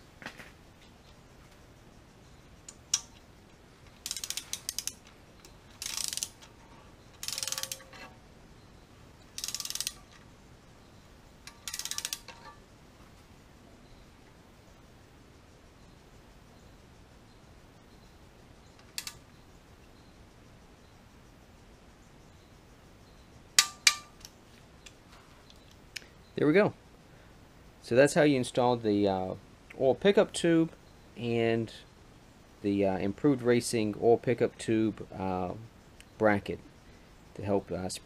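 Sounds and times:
ratchet wrench clicking: 2.7 - 3.2, 3.8 - 6.5, 7.1 - 8.1, 9.3 - 10.2, 11.4 - 12.4, 18.8 - 19.2.

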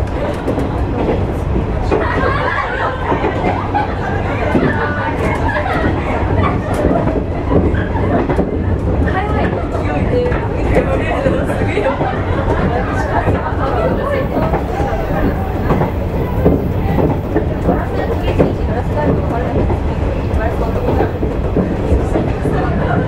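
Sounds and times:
indistinct voices talking: 0.0 - 23.0
train running rumble: 0.0 - 23.0.

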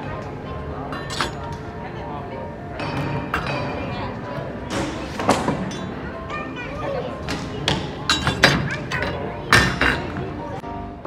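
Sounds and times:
steel ball clanking on metal ladles: 0.9 - 1.6, 4.7 - 6.0, 8.0 - 10.2.

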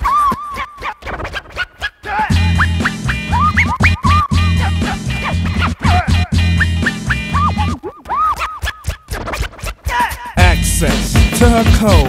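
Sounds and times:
turntable scratching: 0.0 - 12.0
hip-hop bass line and beat: 2.3 - 7.8, 9.1 - 12.0.

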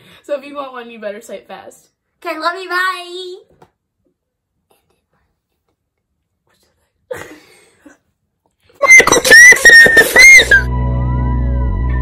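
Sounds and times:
high whistling notes: 8.8 - 10.8
background music with held tones: 9.0 - 12.0.

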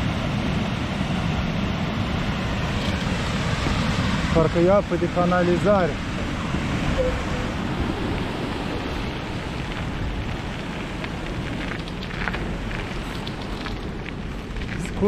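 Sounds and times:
wind rushing over microphone: 0.0 - 15.0
bicycle tyres rolling on asphalt: 7.5 - 15.0.

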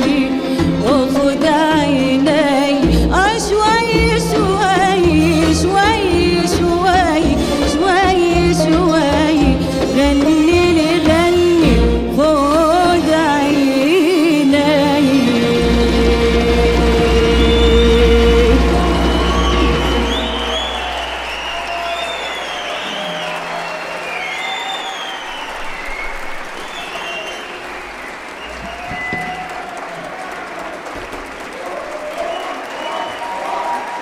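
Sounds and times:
audience applauding and cheering: 15.6 - 34.0
high rising-and-falling calls: 17.4 - 29.8.

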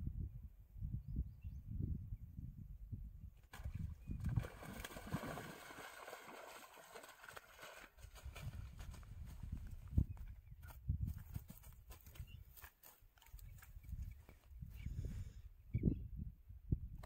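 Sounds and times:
fish splashing: 4.3 - 8.0.

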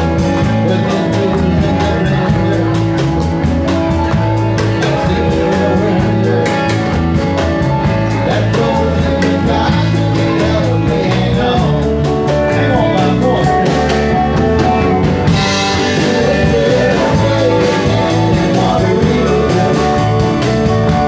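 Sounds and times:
live country-rock band: 0.0 - 21.0
person singing: 0.0 - 21.0.

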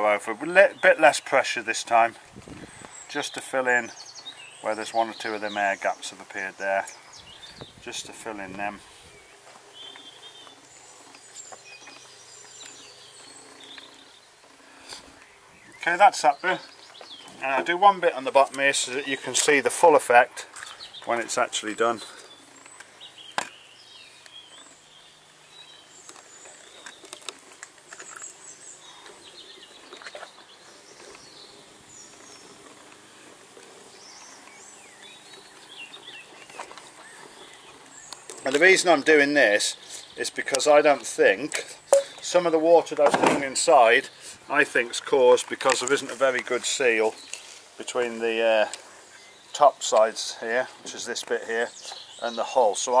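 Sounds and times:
birds chirping: 0.0 - 53.0.

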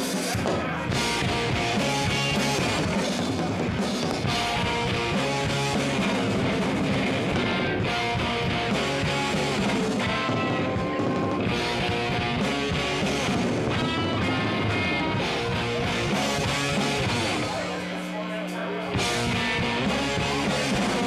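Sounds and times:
drum kit: 0.0 - 18.1, 18.9 - 21.0
electric guitars strummed: 0.0 - 21.0
rock band playing: 0.0 - 21.0.

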